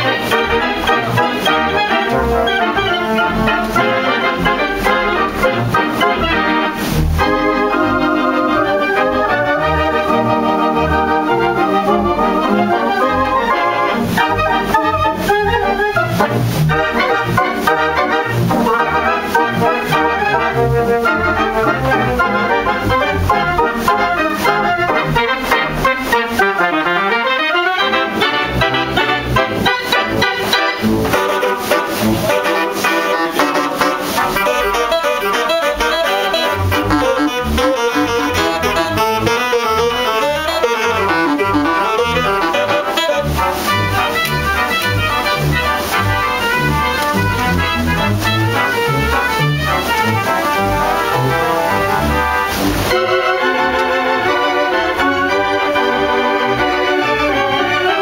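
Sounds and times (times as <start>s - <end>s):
pipe organ playing: 0.0s - 58.0s
pitch sweeping down and up: 0.0s - 58.0s.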